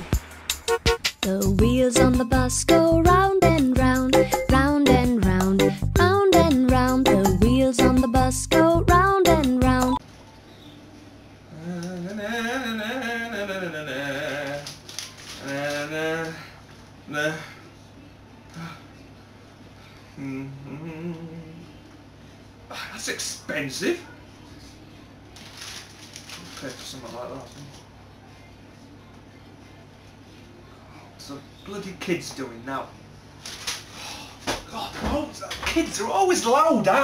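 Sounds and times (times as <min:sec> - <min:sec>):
person singing slow tune: 0:01.2 - 0:10.0, 0:11.5 - 0:14.8, 0:20.1 - 0:22.0
steady low hum: 0:15.5 - 0:25.3.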